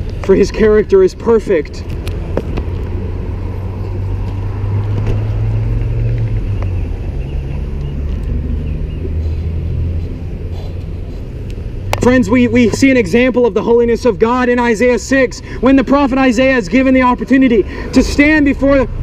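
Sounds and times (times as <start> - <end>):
vehicle engine low rumble: 0.0 - 19.0.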